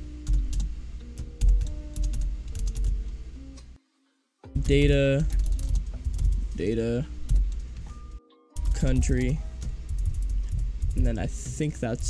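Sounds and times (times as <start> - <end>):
typing on computer keyboard: 1.4 - 3.0, 4.6 - 6.4, 8.6 - 11.1.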